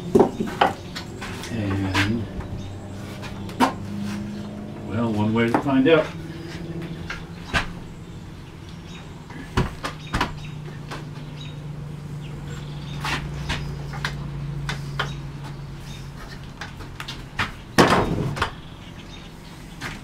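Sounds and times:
low steady hum: 0:00.0 - 0:20.0
wooden parts knocking: 0:00.1 - 0:02.6.

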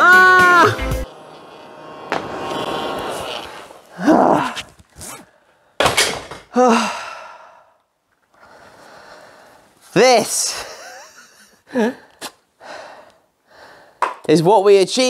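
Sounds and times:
man sighing and gasping: 0:03.9 - 0:04.7, 0:06.5 - 0:07.8, 0:11.6 - 0:14.0.

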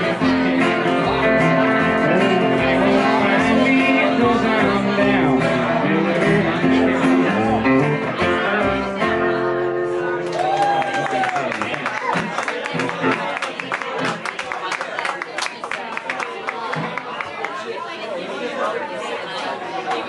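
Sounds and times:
small band playing: 0:00.0 - 0:14.5
voices and chatter: 0:00.0 - 0:20.0
audience clapping: 0:10.2 - 0:17.6.

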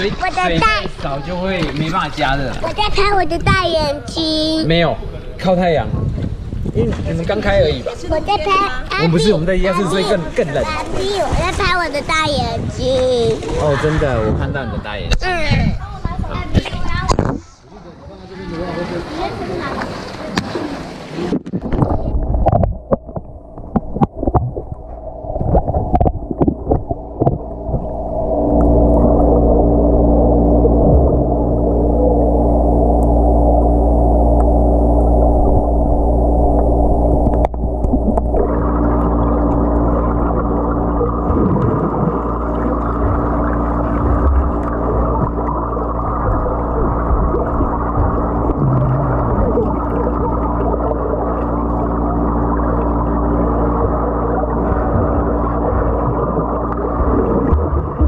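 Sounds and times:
low underwater hum: 0:00.0 - 0:58.0
underwater splashes: 0:06.0 - 0:14.5, 0:16.5 - 0:58.0
bubble clicks: 0:21.3 - 0:29.7, 0:30.4 - 0:58.0.

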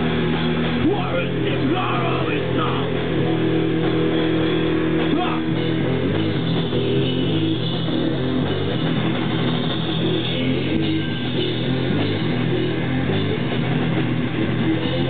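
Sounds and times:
heavy metal band playing: 0:00.0 - 0:15.0.

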